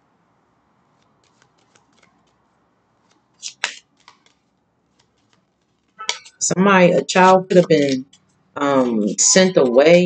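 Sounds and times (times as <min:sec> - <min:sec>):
cards being shuffled: 0:00.9 - 0:06.4, 0:07.2 - 0:09.9
cards sliding: 0:01.0 - 0:02.4, 0:03.0 - 0:06.4.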